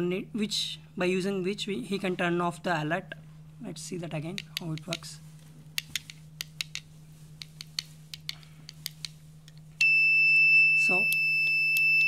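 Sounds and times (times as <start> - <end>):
light clicks and taps: 4.3 - 5.2, 5.8 - 9.6.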